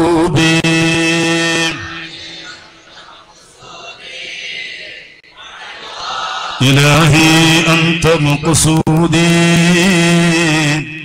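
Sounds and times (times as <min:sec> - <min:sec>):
chanted devotional vocal note: 0:00.0 - 0:05.8
faint hall background: 0:00.0 - 0:11.0.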